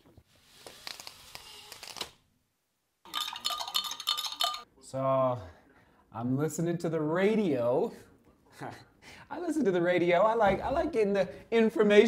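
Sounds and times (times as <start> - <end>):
spoon clinking on crockery: 3.1 - 4.6.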